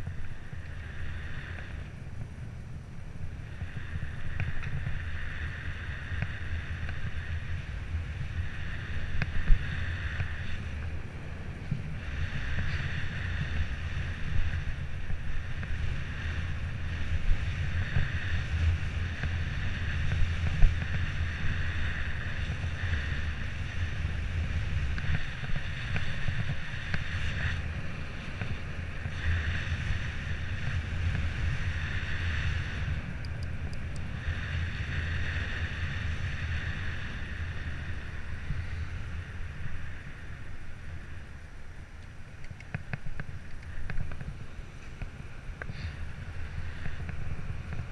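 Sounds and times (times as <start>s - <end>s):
road and tyre rumble: 0.0s - 47.9s
wind buffeting microphone: 0.0s - 47.9s.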